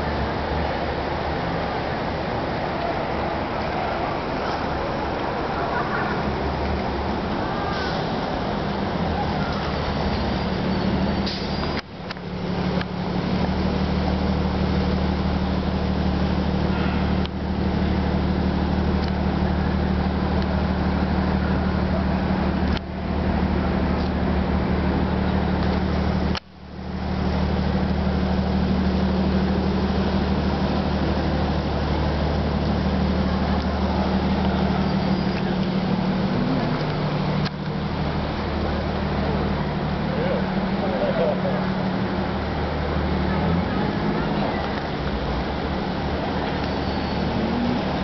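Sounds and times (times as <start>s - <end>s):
noisy traffic wash: 0.0s - 48.0s
traffic engine hum: 0.0s - 48.0s.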